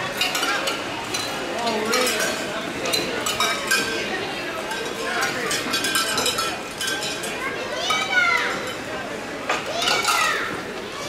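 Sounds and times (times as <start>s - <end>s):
murmur of voices: 0.0s - 11.0s
children calling out and cheering: 7.4s - 8.8s, 9.6s - 11.0s.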